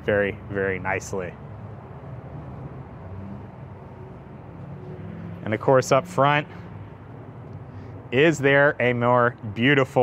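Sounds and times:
engine idling hum: 0.0 - 9.6
outdoor background noise: 0.0 - 10.0.

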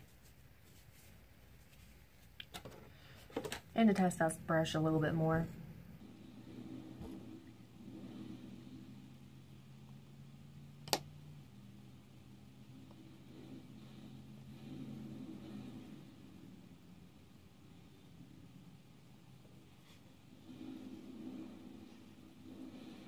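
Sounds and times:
makeup brush on skin: 0.0 - 2.4
low steady hum: 0.0 - 23.0.

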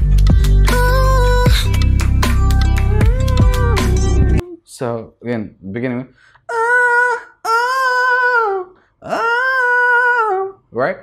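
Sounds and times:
high solo singing voice: 0.4 - 4.7, 6.5 - 10.6
person speaking: 3.3 - 11.0.

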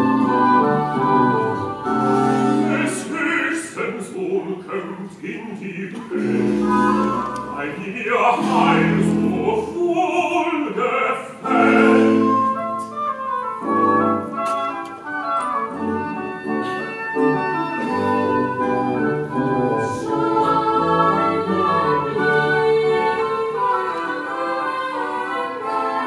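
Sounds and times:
choir singing: 0.0 - 14.2, 15.6 - 26.0
oboes: 0.0 - 26.0
strings: 0.0 - 26.0
harpsichord: 5.8 - 26.0.

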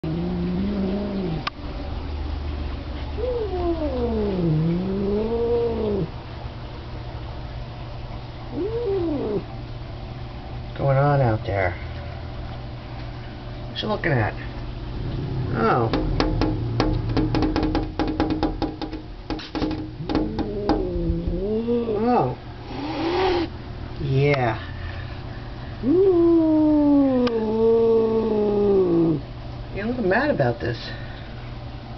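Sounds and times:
cat yowling angrily: 3.2 - 6.1, 8.5 - 9.5, 20.0 - 23.5, 25.8 - 29.2.

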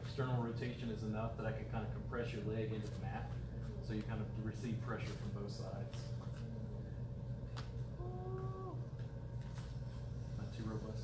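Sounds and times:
steady low hum: 0.0 - 11.0
person humming: 8.0 - 9.0.

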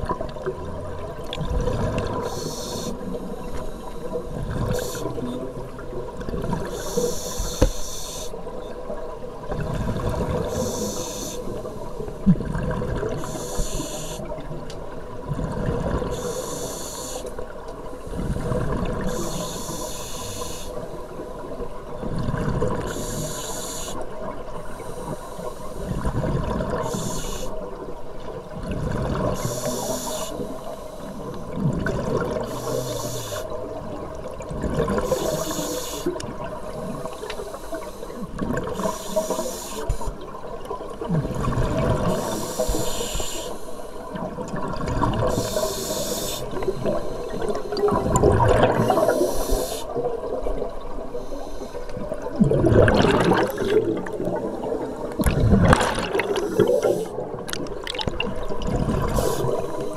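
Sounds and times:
gurgle of exhaled bubbles: 0.0 - 3.2, 9.0 - 10.7, 12.1 - 13.4, 15.2 - 16.2, 22.0 - 23.2, 25.9 - 27.1, 28.4 - 29.5, 31.4 - 32.8, 33.6 - 35.4, 40.6 - 42.7, 44.1 - 45.7, 46.6 - 51.2, 52.0 - 59.9
regulator air hiss: 2.2 - 5.2, 6.7 - 8.4, 10.4 - 12.0, 13.2 - 14.4, 16.1 - 17.4, 19.1 - 21.0, 22.9 - 24.0, 24.7 - 25.9, 26.8 - 27.6, 29.4 - 31.3, 32.4 - 33.6, 35.0 - 36.1, 37.0 - 38.2, 38.8 - 40.2, 42.2 - 44.1, 45.3 - 47.8, 48.8 - 50.0, 51.1 - 52.0, 56.4 - 57.3, 59.0 - 59.9.

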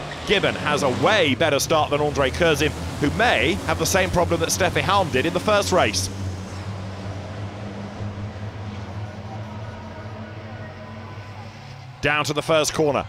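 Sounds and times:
diesel truck engines accelerating: 0.0 - 13.0.

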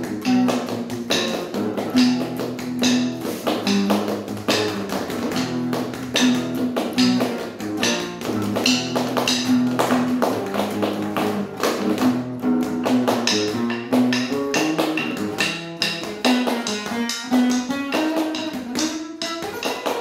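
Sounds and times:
acoustic guitar strumming chords: 0.0 - 20.0
percussion struck with drumsticks: 0.0 - 20.0.

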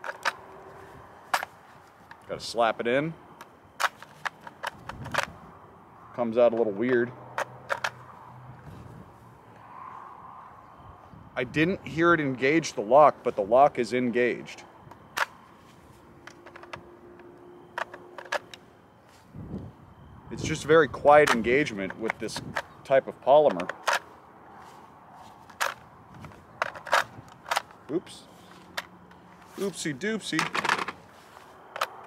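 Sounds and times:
rifle magazine clicks and knocks: 16.2 - 18.6, 25.5 - 27.8.

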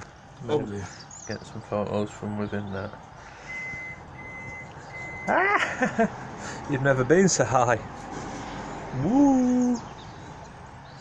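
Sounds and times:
vehicle reversing alarm beeping: 3.4 - 5.8.

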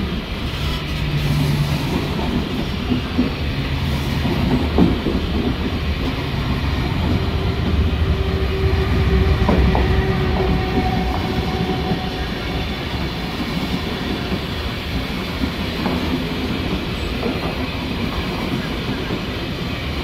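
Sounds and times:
train coaches rumbling past: 0.0 - 20.0.

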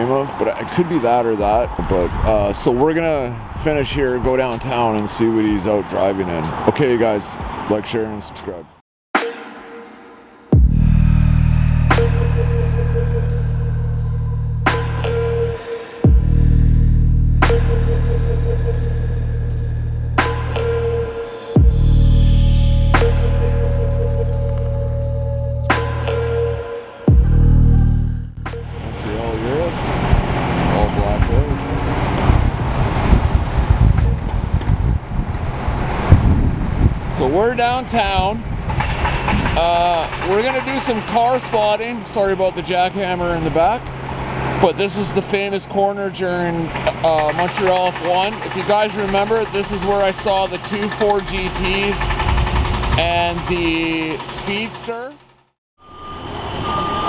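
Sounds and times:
rumble of passing cars: 0.0 - 8.7, 10.6 - 57.0
street traffic: 0.0 - 8.8, 10.4 - 57.0
wind buffeting microphone: 0.2 - 6.7, 28.8 - 41.8, 48.1 - 54.3
high electronic beep: 55.8 - 57.0.

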